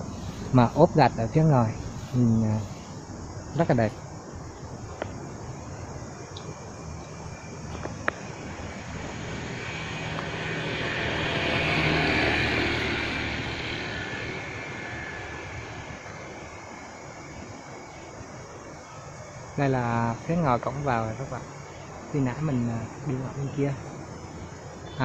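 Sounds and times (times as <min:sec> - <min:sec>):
aircraft passing overhead: 0:06.7 - 0:19.6.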